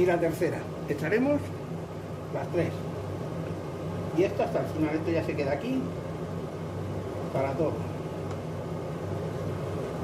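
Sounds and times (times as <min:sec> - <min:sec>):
faint fan hiss: 0:00.0 - 0:10.0
induction hob electrical hum: 0:00.0 - 0:10.0.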